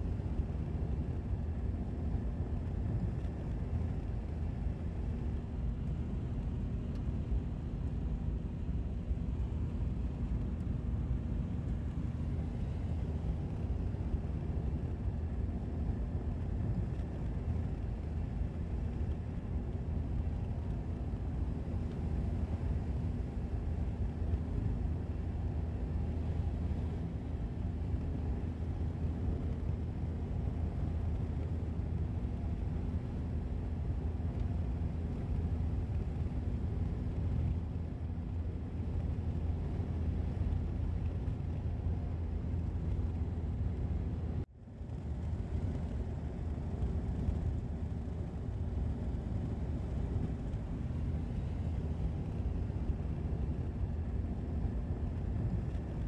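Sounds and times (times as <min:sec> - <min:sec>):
car engine and tyre rumble: 0:00.0 - 0:56.0
faint steady hum: 0:00.0 - 0:56.0.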